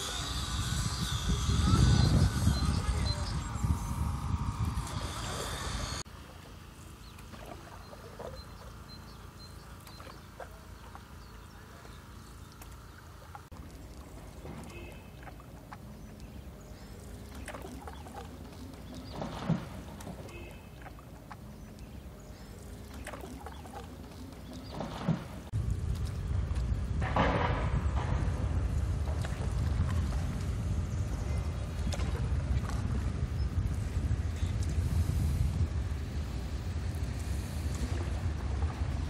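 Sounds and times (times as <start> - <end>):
canoe paddle strokes in water: 0.0 - 39.0
water splashes and drips: 9.6 - 30.8, 31.5 - 35.3.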